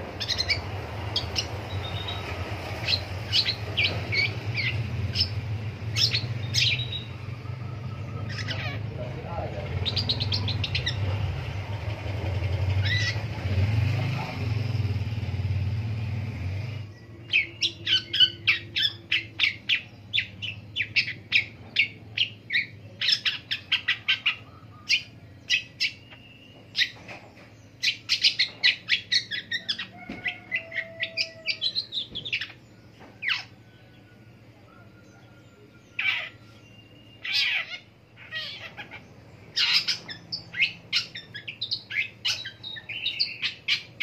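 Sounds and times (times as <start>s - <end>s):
bird chirping: 0.0s - 15.4s, 16.6s - 44.0s.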